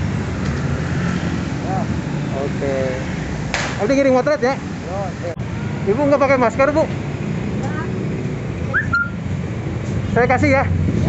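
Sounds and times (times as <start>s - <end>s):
low rumble of street traffic: 0.0s - 11.0s
high chirp rising in pitch: 8.7s - 9.2s.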